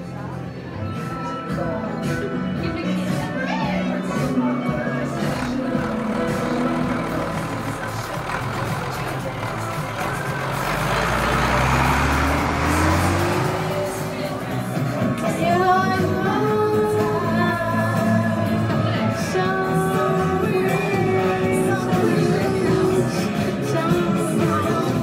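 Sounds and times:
music playing: 0.0s - 25.0s
slowly rising tone: 5.2s - 15.2s.

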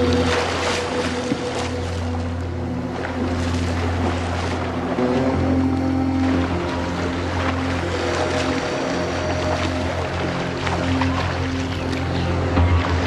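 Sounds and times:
soundtrack music with held notes: 0.0s - 13.0s
swimmer splashing: 0.0s - 13.0s.

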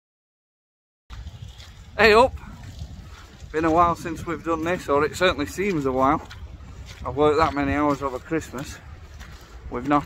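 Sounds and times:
wind buffeting microphone: 1.1s - 10.0s.

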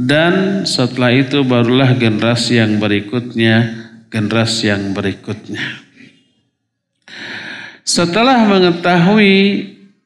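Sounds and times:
man breathing in: 7.1s - 7.8s.

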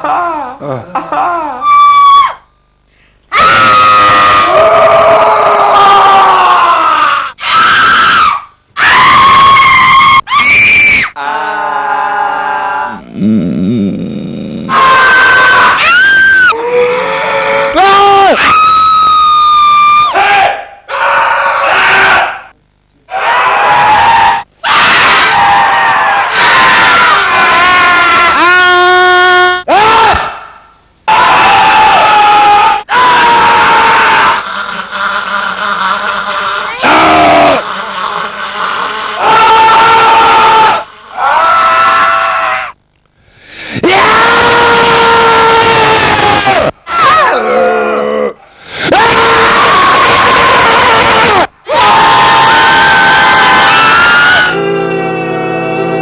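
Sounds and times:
people screaming into microphone: 3.3s - 13.0s, 14.7s - 22.5s, 23.1s - 30.4s, 31.1s - 34.9s, 36.6s - 37.7s, 39.2s - 42.8s, 43.8s - 48.0s, 48.7s - 55.6s.

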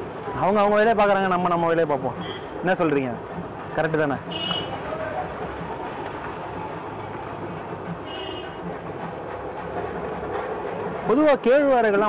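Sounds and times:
motorbikes and scooters passing: 0.0s - 11.3s.

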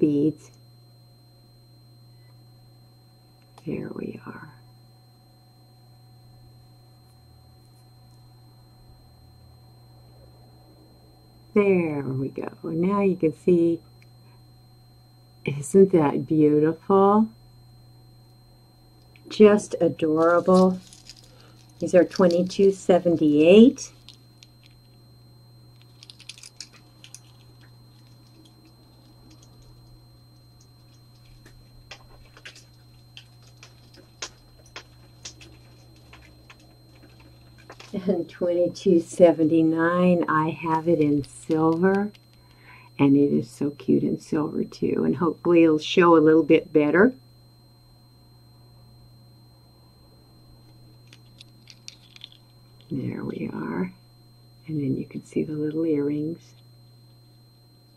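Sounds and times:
low hum: 0.0s - 57.9s
jewelry and metal hooks clinking: 20.2s - 24.8s, 25.8s - 29.9s, 30.8s - 38.0s, 51.1s - 52.9s.

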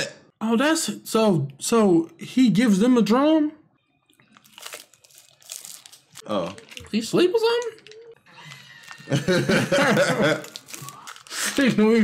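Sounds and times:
plastic sleeve crinkling: 4.2s - 9.2s, 10.2s - 12.0s.

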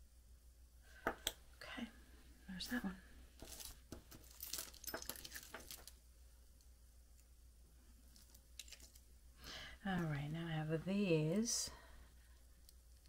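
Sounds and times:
plastic bags crinkling: 3.4s - 6.0s, 8.1s - 9.0s
jewelry pieces clicking: 4.2s - 5.9s.

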